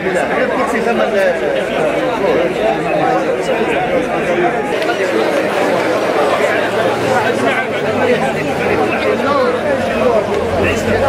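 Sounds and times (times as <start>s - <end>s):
crowd of men chattering: 0.0s - 11.0s.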